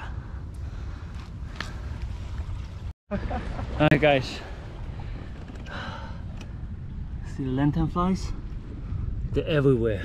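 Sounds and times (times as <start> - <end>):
wind buffeting microphone: 0.3 - 10.0.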